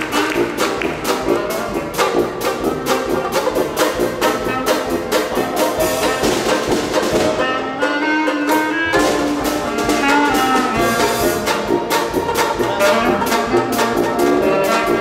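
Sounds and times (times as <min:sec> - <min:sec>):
jazz band playing: 0:00.0 - 0:15.0.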